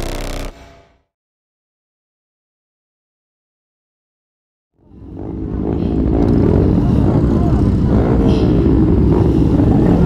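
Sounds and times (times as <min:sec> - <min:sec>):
motorcycle engines idling: 0:05.0 - 0:10.0.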